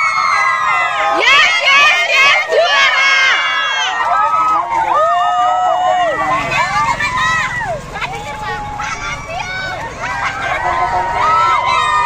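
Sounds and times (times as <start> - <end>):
children shouting and cheering: 0.0 - 12.0
vehicle engines passing: 0.0 - 12.0.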